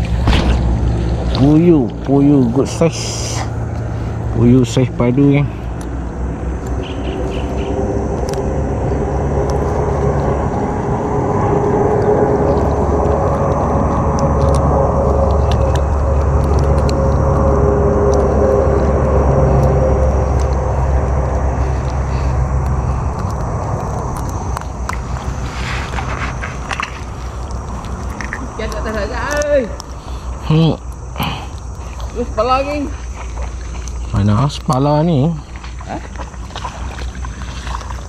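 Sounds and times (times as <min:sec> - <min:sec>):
engine running low rumble: 0:00.0 - 0:38.0.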